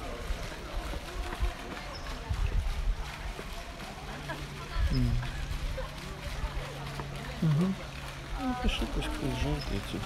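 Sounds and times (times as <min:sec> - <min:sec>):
faint indistinct voices: 0:00.0 - 0:10.0.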